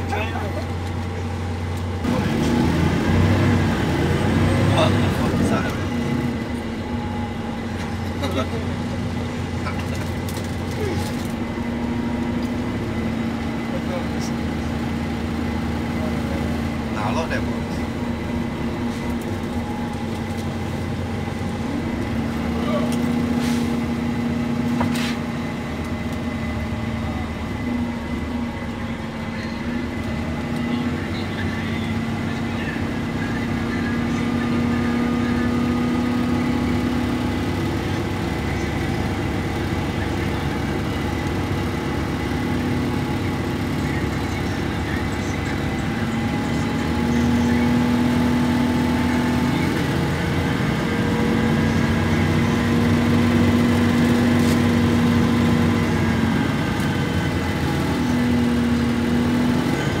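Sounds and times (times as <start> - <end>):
bus engine droning: 0.0 - 60.0.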